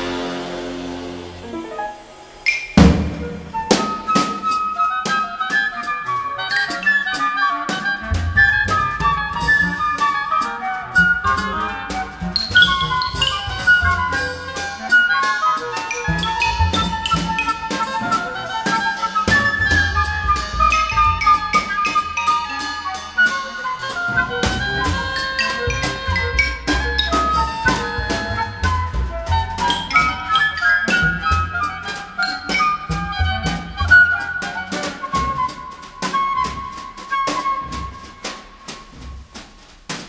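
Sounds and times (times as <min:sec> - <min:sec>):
bass: 0:00.0 - 0:01.6, 0:08.0 - 0:38.0
cymbal and drum strokes: 0:00.0 - 0:05.2, 0:07.7 - 0:33.8, 0:34.8 - 0:40.0
woodwind melody: 0:00.0 - 0:39.6.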